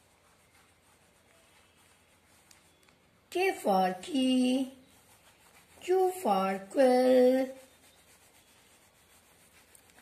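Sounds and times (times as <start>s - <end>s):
crayon colouring on paper: 0.0s - 10.0s.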